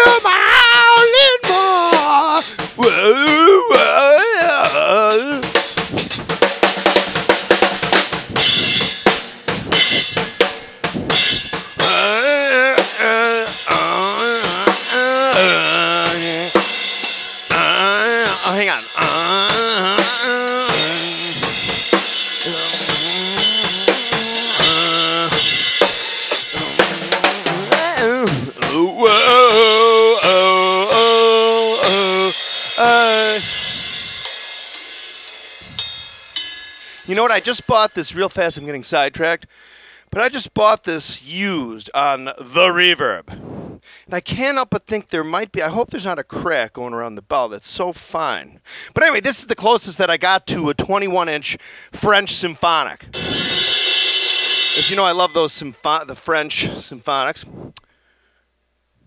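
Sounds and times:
wordless vocal melody: 0.0 - 5.8, 11.8 - 16.9, 17.5 - 34.4
drum kit playing: 0.0 - 38.6, 53.1 - 57.0.

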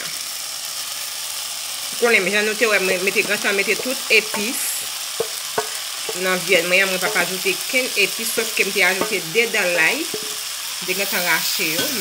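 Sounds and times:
vegetables sizzling in a pot: 0.0 - 12.0.

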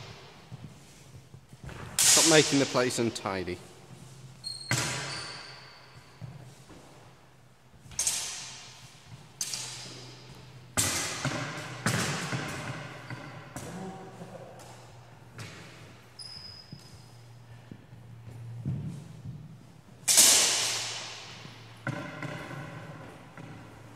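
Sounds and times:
sword blades clashing: 20.1 - 21.3.

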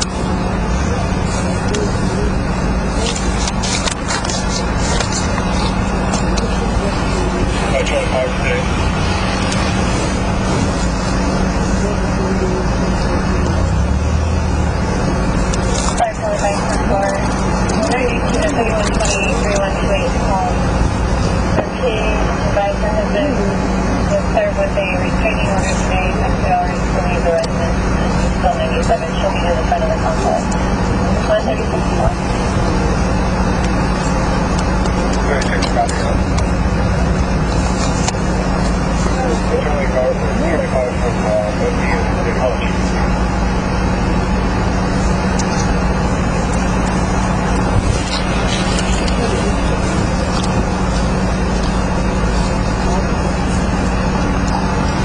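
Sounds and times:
constant low hum: 0.0 - 55.0
faint unintelligible voices: 0.1 - 13.8, 15.5 - 45.8, 46.6 - 55.0.

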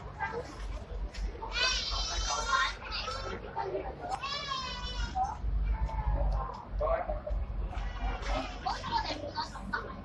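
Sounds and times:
voices of people: 0.0 - 10.0.

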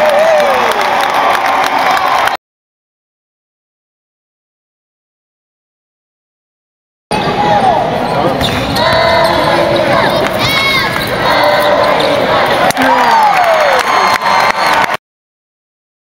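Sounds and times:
players and crowd calling out: 7.1 - 15.0
sneakers squeaking: 7.9 - 12.7.

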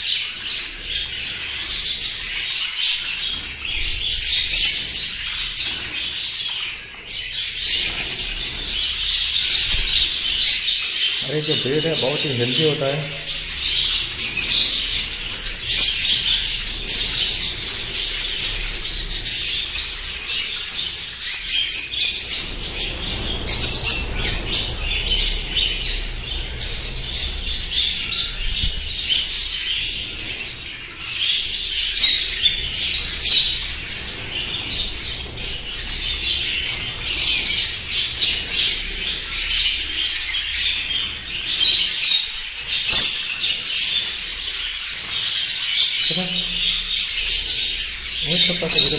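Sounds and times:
budgerigars chattering and chirping: 0.0 - 48.9
wings flapping: 7.5 - 41.9.

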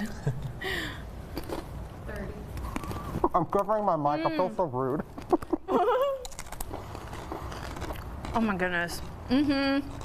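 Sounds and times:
chewing crunchy chips: 1.3 - 1.7, 5.0 - 10.0.

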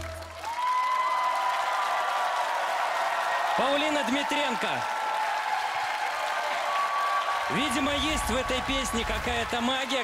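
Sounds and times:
audience applause: 0.0 - 10.0.

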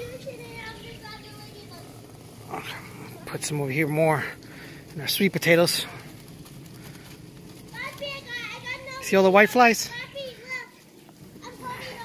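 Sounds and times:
child talking: 0.0 - 3.6, 7.7 - 12.0
adult speech: 2.6 - 4.4, 5.0 - 6.0, 8.6 - 10.4.

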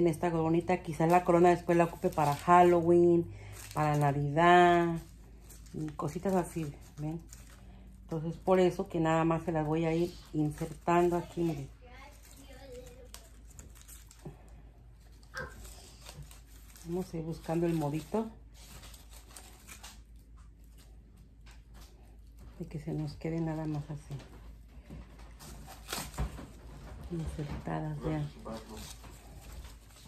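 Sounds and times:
rustling and scratching of stems: 0.0 - 30.0.

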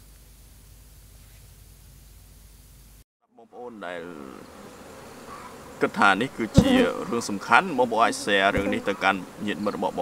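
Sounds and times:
honeybees buzzing: 3.4 - 10.0.

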